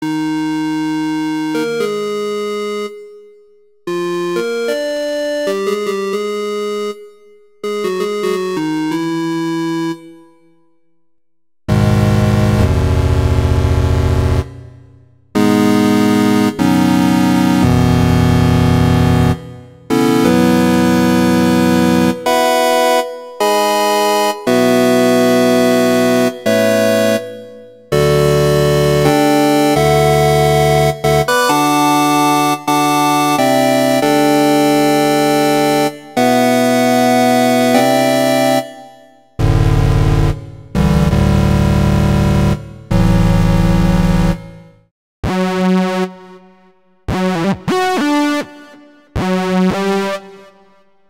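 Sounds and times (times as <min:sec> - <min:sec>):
buzzy synthesizer chord: 0:11.7 - 0:50.7.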